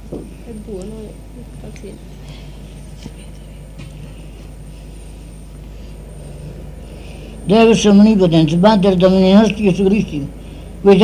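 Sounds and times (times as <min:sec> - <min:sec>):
electrical hum and tape hiss: 0:00.0 - 0:11.0.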